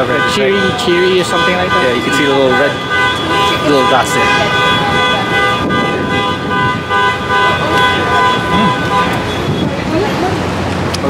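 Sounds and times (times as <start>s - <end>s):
vehicle horn blast: 0.0s - 9.7s
street traffic: 0.0s - 11.0s.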